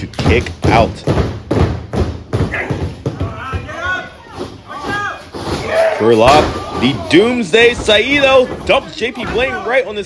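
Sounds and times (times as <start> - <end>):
voices shouting: 2.5 - 7.5.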